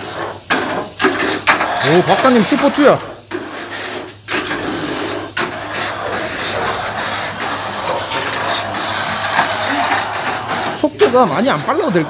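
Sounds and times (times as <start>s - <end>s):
toy cars whirring on plastic track: 0.0s - 12.0s.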